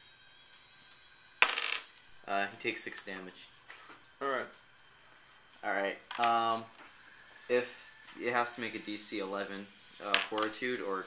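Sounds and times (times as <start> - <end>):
die clattering on wooden table: 1.4 - 1.9.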